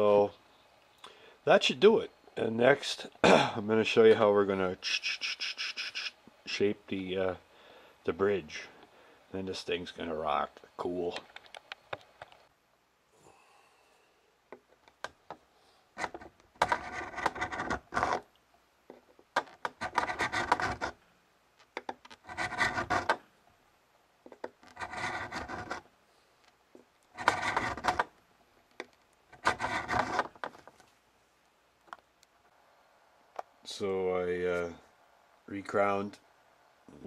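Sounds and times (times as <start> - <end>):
file rasping on metal frets: 19.8 - 21.0, 22.3 - 23.2, 24.8 - 25.8, 27.2 - 28.1, 29.4 - 30.2.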